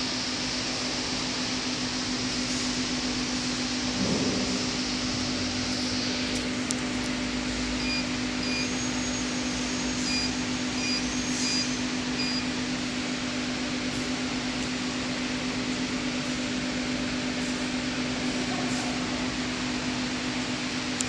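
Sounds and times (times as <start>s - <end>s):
short high beeps: 9.9s - 12.5s.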